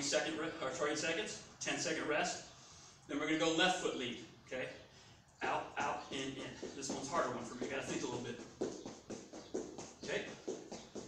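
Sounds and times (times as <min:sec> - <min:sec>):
quick footsteps on exercise mat: 0:05.6 - 0:11.0.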